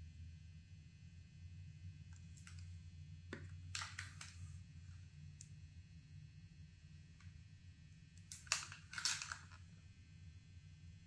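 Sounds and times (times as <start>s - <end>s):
plastic crinkling and crackling: 3.4s - 4.4s, 8.3s - 9.6s.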